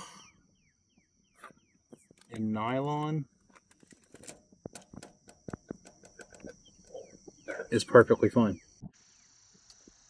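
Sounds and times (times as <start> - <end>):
light clicks and taps on foil: 3.5 - 7.0.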